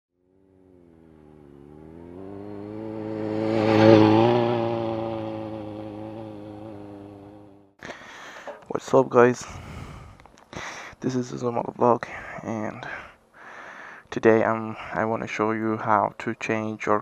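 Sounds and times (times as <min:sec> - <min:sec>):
motorcycle passing by: 0:00.2 - 0:07.8.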